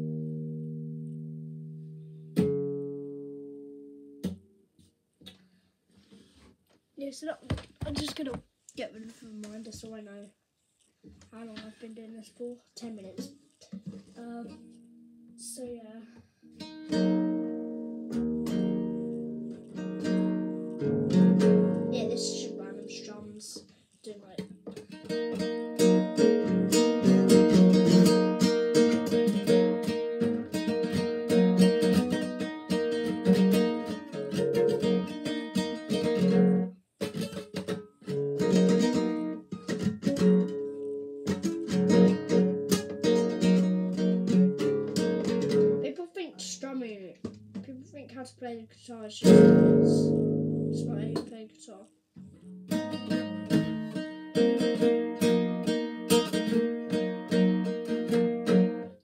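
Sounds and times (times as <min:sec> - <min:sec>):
classical guitar strumming chords: 0:00.0 - 0:05.4, 0:13.1 - 0:15.6, 0:16.3 - 0:59.0.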